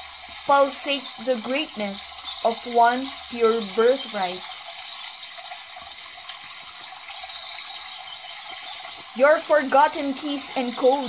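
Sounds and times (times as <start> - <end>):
running water: 0.0 - 11.0.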